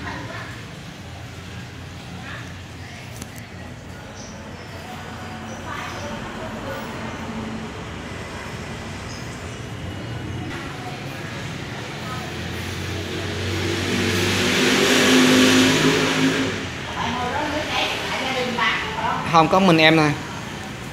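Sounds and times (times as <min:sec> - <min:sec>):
motor vehicle passing: 0:00.0 - 0:20.9.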